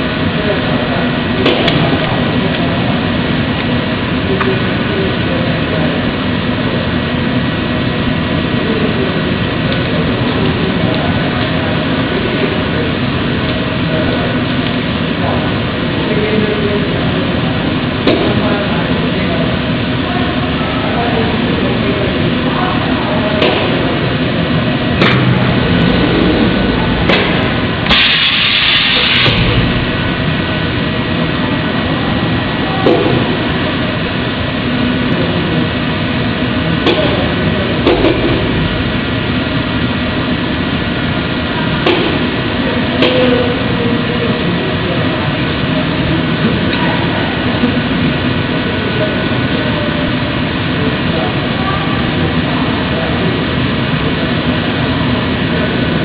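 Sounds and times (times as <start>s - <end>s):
machine drone with thin whine: 0.0s - 56.0s
burst of hiss: 27.8s - 30.3s.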